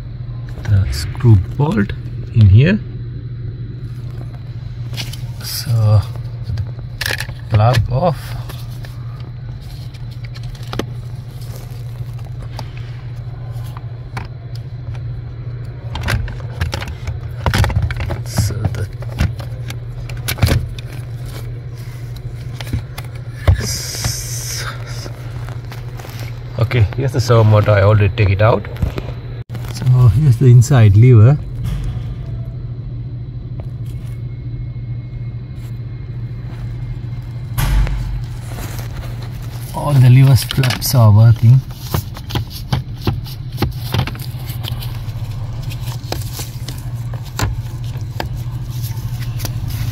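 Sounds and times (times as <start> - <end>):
steady low hum: 0.0 - 49.9
handling noise: 3.8 - 27.8, 36.4 - 49.9.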